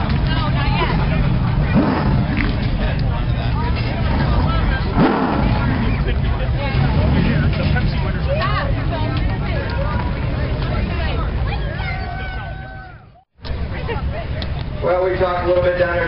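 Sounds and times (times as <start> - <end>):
car engine rumbling and revving: 0.0 - 11.8
people talking: 0.0 - 16.0.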